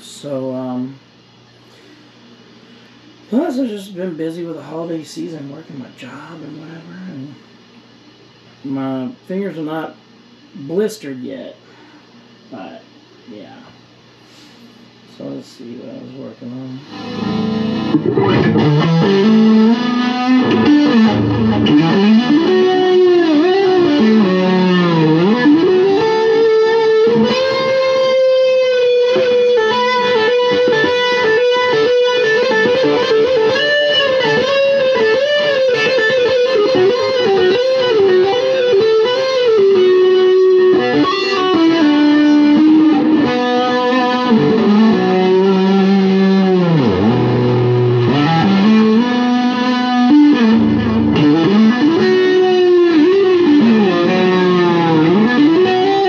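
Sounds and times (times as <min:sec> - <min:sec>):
electric guitar lead melody: 0:16.8 - 0:56.0.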